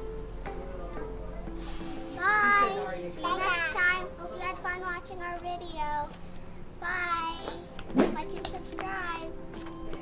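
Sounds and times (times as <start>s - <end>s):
young child talking: 2.2s - 6.2s, 6.8s - 9.4s.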